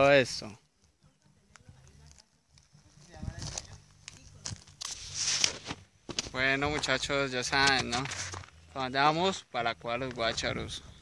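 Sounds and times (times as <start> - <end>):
phone rustling against clothing: 2.1 - 8.7.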